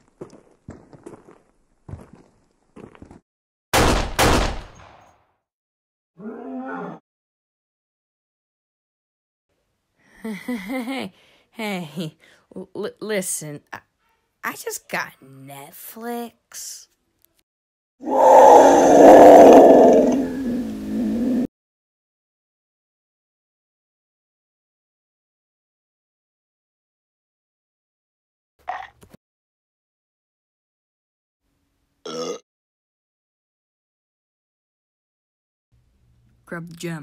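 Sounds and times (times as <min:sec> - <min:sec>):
pistol gunshots ringing: 0:03.8 - 0:05.2
monster roar: 0:18.0 - 0:21.5.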